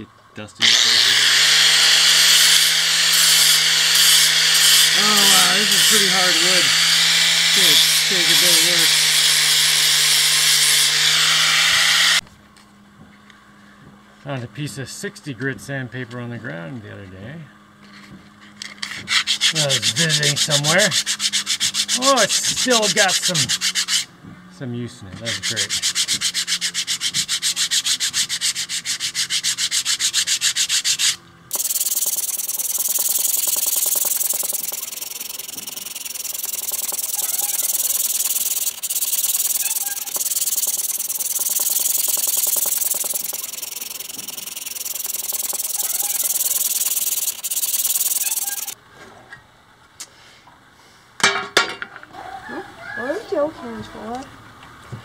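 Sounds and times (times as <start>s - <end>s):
hand sanding wood: 1.7s - 12.2s, 18.8s - 24.1s, 25.0s - 48.8s.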